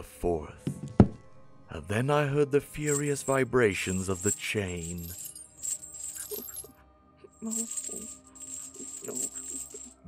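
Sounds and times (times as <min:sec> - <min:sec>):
faint music: 0:00.0 - 0:10.0
metal chain rattling: 0:02.9 - 0:06.7, 0:07.4 - 0:10.0.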